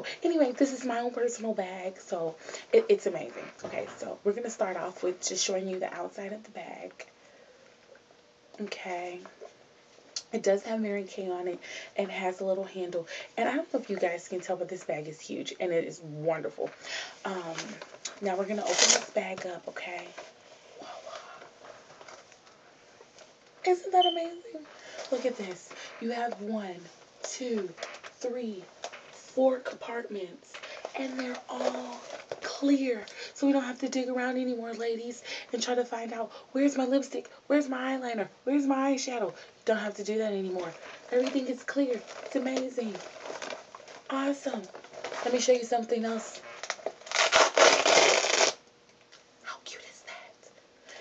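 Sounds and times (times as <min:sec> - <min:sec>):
fastening tearing open: 0:46.6 - 0:48.6.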